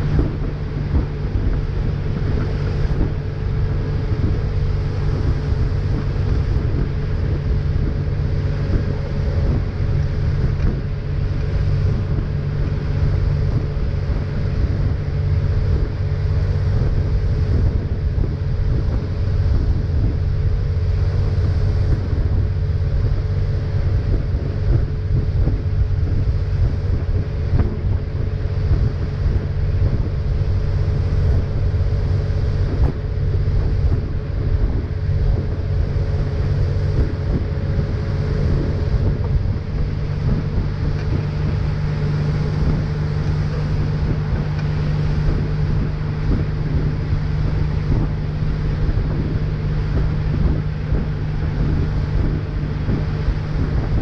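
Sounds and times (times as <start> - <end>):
boat engine running: 0.0 - 54.0
rush of boat wake: 0.0 - 54.0
wind on microphone: 0.0 - 54.0.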